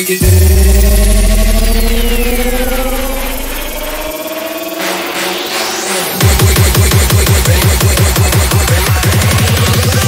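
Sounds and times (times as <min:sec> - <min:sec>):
heavy sub-bass hit: 0:00.2 - 0:04.7
rising synth tones: 0:00.2 - 0:05.9
high falling sweep: 0:00.2 - 0:06.2
rising noise sweep: 0:00.2 - 0:06.2.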